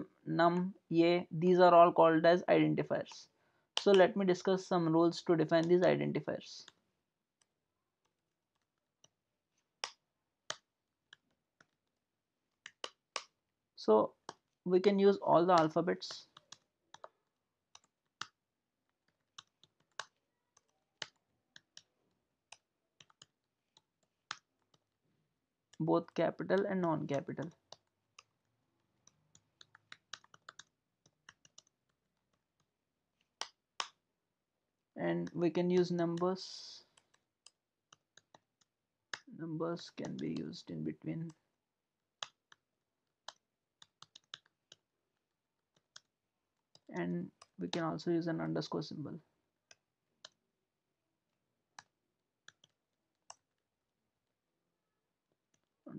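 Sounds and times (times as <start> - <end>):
computer keyboard key clicks: 43.2 - 44.5.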